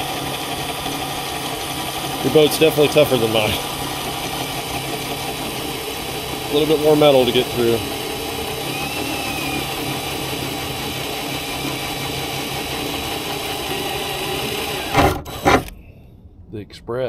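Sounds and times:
cordless drill boring through metal: 0.0s - 15.8s.

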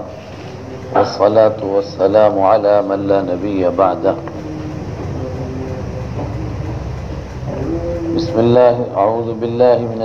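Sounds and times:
faint man's voice: 0.0s - 10.0s
low rumble of background noise: 0.0s - 10.0s.

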